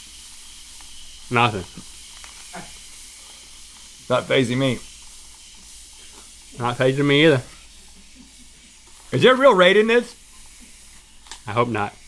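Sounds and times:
spray can hissing: 0.0s - 12.0s.

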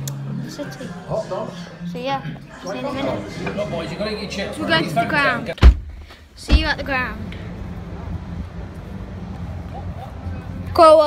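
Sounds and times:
low outdoor rumble: 6.3s - 11.0s.

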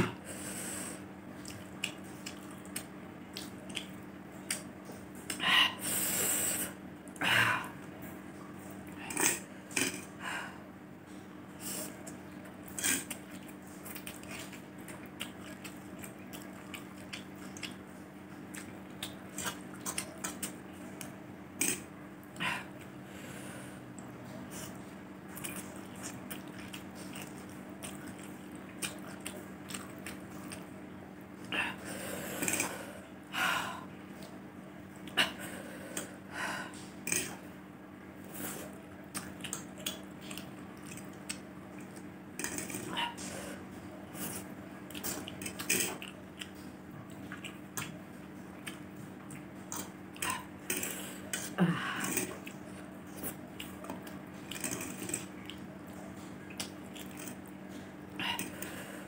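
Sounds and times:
faint steady hum: 0.0s - 59.0s
close chewing: 1.4s - 5.0s, 11.9s - 21.9s, 24.0s - 30.8s, 38.4s - 43.3s, 44.1s - 58.8s.

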